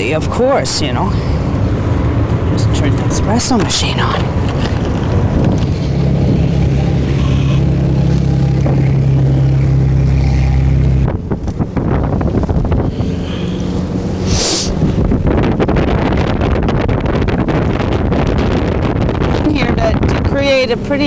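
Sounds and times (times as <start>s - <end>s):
choppy water: 0.0s - 21.0s
motorboat engine droning: 0.0s - 21.0s
wind buffeting microphone: 0.0s - 21.0s
short hiss: 14.3s - 14.7s.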